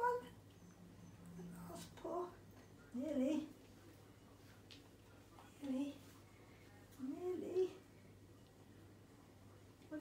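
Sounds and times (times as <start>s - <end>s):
puppy whining: 0.5s - 2.9s.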